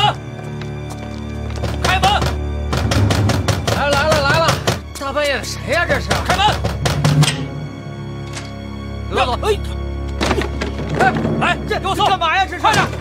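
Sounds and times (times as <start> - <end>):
fists pounding on wooden doors: 1.7 - 4.9.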